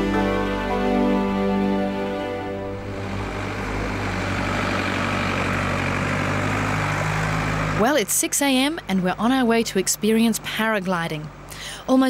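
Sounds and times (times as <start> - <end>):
music: 0.0 - 3.8
truck engine running: 0.0 - 11.5.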